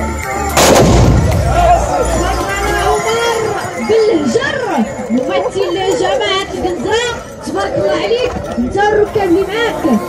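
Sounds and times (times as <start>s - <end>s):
musket volley blast with echo: 0.6s - 1.8s.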